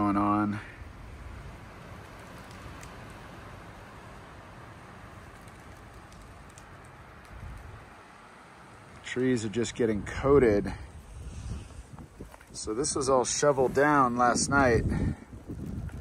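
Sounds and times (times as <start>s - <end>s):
outdoor background hiss: 0.0s - 16.0s.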